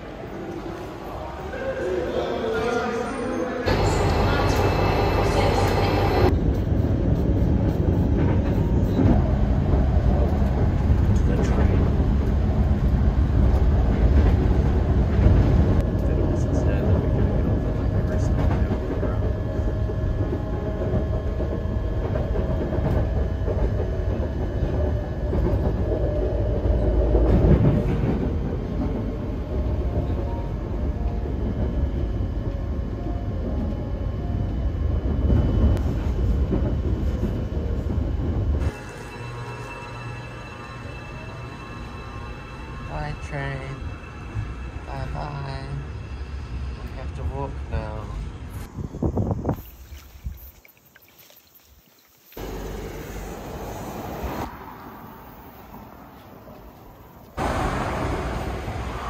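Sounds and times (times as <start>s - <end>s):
train wheels rumbling on track: 3.7s - 48.7s, 52.4s - 59.0s.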